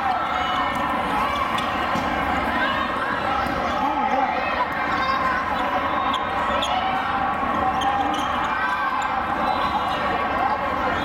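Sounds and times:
hubbub of voices: 0.0 - 11.0
volleyballs being hit and bouncing: 0.6 - 2.4.

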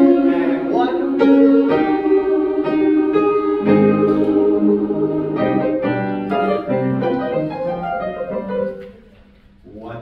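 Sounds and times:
grand piano playing chords: 0.0 - 9.1.

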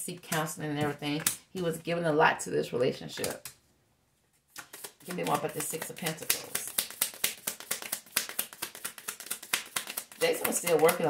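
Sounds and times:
cards being shuffled: 4.3 - 11.0.

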